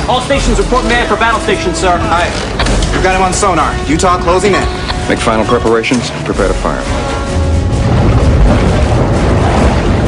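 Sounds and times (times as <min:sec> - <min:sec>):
film music: 0:00.0 - 0:10.0
loud deep rumble: 0:07.0 - 0:10.0.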